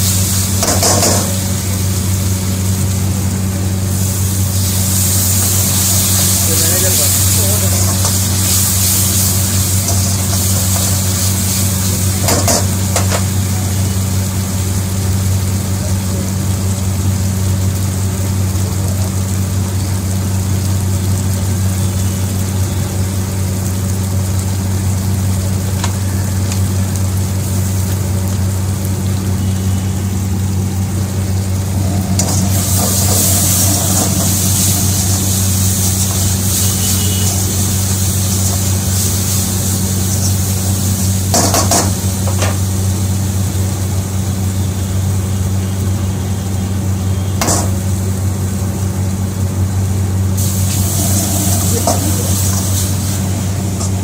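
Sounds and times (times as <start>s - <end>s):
food sizzling in a wok: 0.0s - 54.0s
steady low hum: 26.3s - 54.0s.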